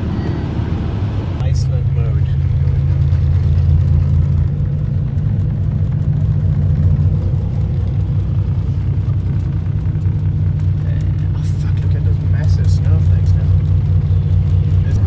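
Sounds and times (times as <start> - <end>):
car engine and tyre rumble: 0.0 - 15.0.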